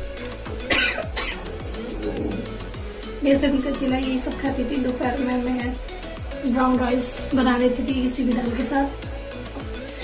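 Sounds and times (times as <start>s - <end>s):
background music: 0.0s - 10.0s
woman coughing: 0.7s - 1.5s.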